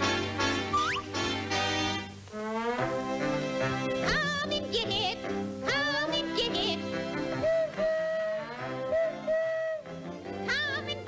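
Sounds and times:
horn blowing long notes: 0.0 - 4.4, 6.7 - 10.3.

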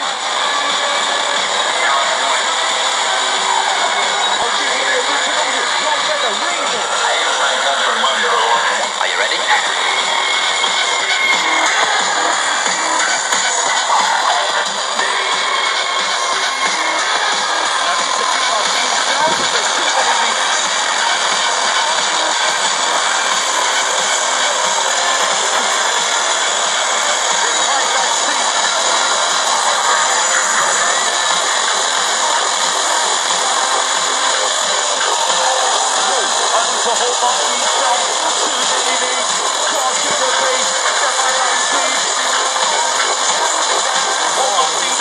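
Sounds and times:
faint broadcast voice: 0.0 - 45.0
radio hiss and static: 0.0 - 45.0.

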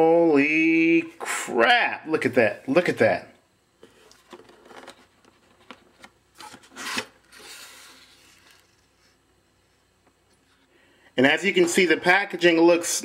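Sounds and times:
cardboard scrape: 6.4 - 8.9.

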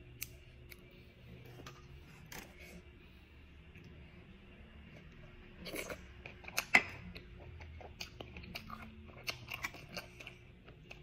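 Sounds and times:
chewing with mouth clicks and smacks: 5.6 - 11.0.

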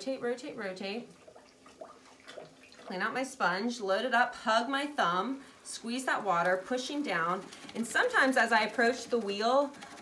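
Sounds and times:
wet clay squelching: 5.6 - 10.0.

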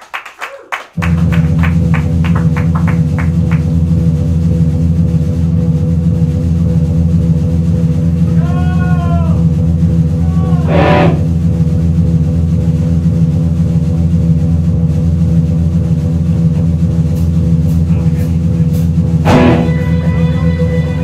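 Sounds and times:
loud low guitar drone: 1.0 - 21.0
drum hits: 1.1 - 3.9, 10.6 - 11.4, 16.5 - 20.1
guitar note bending: 10.6 - 11.4, 19.2 - 21.0.

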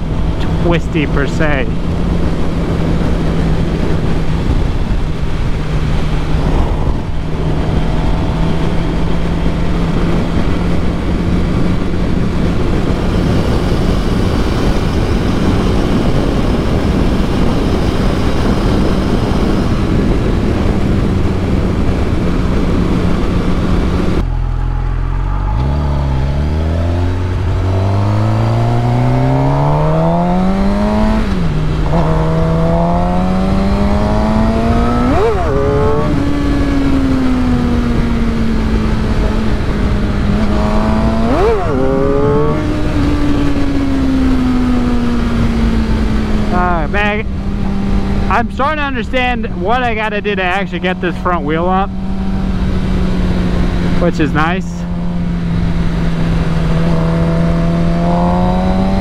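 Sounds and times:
heavy wind noise: 0.0 - 59.0
motorcycle engine revving: 0.0 - 59.0.

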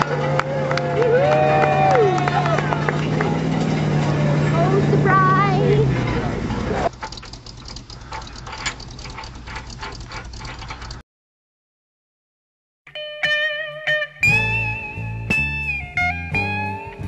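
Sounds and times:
voices: 0.0 - 6.9
vehicle engine idling: 0.0 - 11.0
scattered ticks: 6.9 - 11.0.

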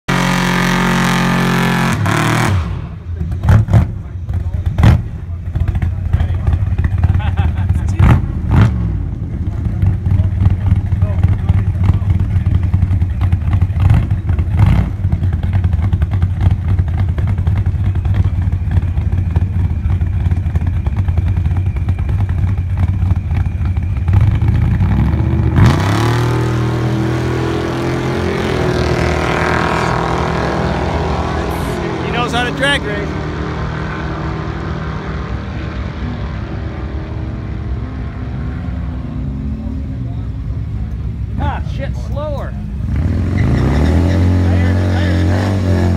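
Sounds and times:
cars accelerating away: 0.1 - 41.6, 42.6 - 45.9
car burnout: 0.1 - 45.9
car engines idling: 2.0 - 45.3.

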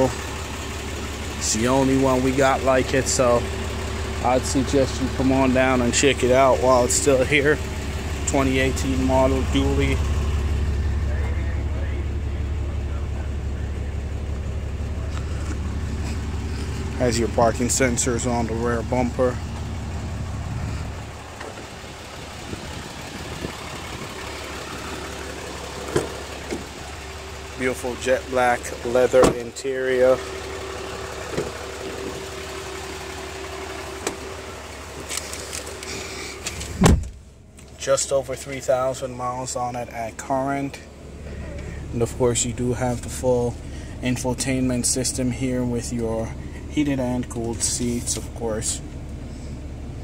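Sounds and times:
truck engine idling: 0.0 - 50.0.

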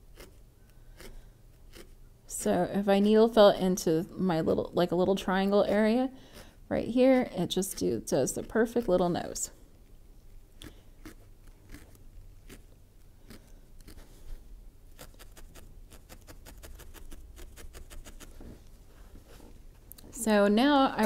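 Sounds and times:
felting needle poking wool: 1.0 - 2.0, 10.6 - 18.4.

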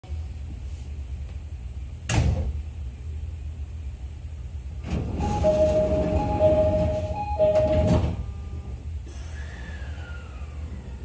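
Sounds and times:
train interior low hum: 0.0 - 11.0
sliding doors closing: 4.8 - 11.0
two-tone door chime: 5.2 - 8.6.

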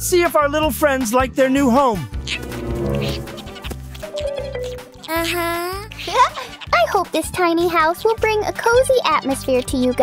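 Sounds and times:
children's music: 2.2 - 10.0.

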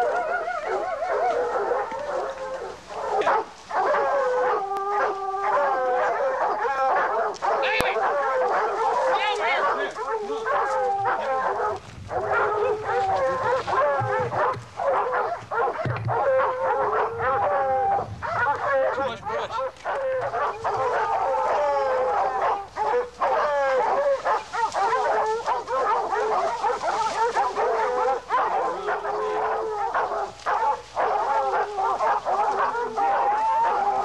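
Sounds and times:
dogs barking and howling: 0.0 - 34.0.

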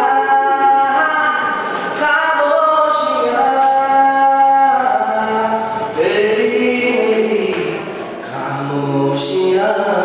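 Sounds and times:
young man singing: 0.0 - 10.0.

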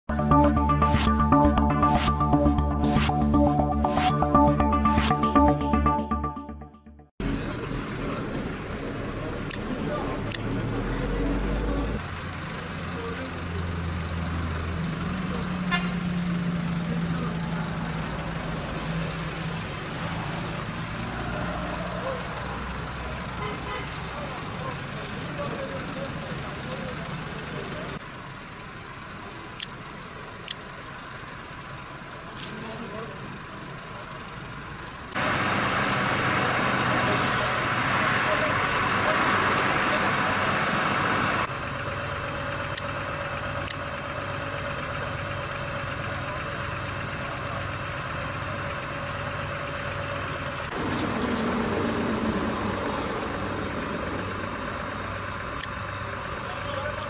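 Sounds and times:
vehicle engines: 7.2 - 57.0
indistinct voices: 35.4 - 41.5.

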